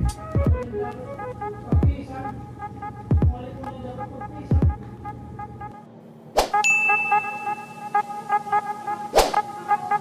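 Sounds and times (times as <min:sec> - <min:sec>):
electronic background music: 0:00.0 - 0:10.0
bright held ding: 0:06.6 - 0:07.9.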